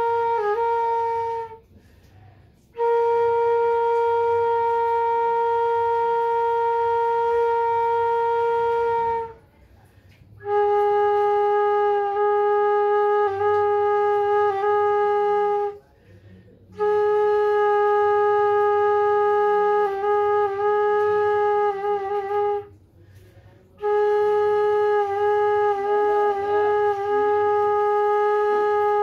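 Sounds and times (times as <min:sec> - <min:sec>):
bamboo flute long note: 0:00.0 - 0:29.0.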